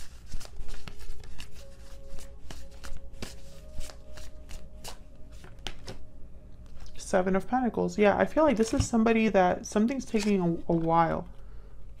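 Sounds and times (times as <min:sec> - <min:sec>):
cards being shuffled: 0:00.0 - 0:06.0, 0:10.0 - 0:11.2.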